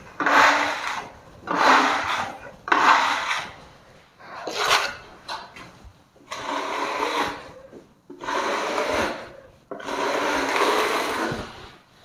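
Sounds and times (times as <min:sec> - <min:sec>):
trowel scraping plaster wall: 0:00.0 - 0:12.0.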